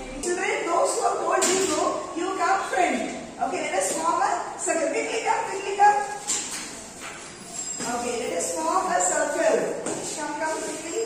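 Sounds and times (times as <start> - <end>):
woman speaking: 0.0 - 6.3, 7.8 - 11.0.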